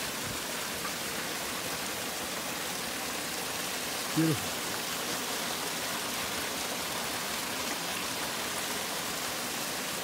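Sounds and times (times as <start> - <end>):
water pouring into stone pool: 0.0 - 10.0
water running over weir: 0.0 - 10.0.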